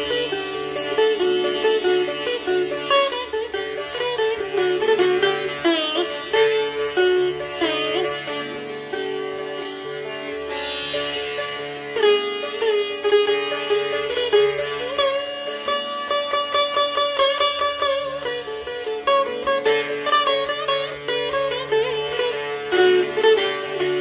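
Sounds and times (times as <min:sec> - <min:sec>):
sitar notes bending: 0:00.0 - 0:24.0
sitar quick repeated strokes: 0:00.0 - 0:24.0.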